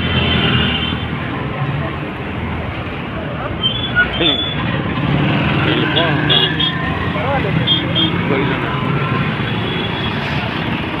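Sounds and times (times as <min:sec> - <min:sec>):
scooter and motorbike engines: 0:00.0 - 0:11.0
people's voices: 0:01.4 - 0:11.0.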